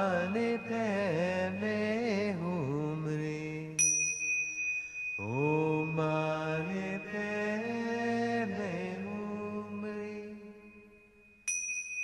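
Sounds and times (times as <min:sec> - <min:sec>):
bell ringing: 0:03.8 - 0:12.0
low voice chanting: 0:05.2 - 0:10.8.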